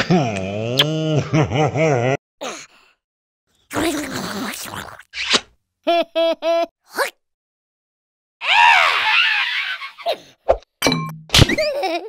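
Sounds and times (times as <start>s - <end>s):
cartoon wailing cry: 8.4s - 10.0s.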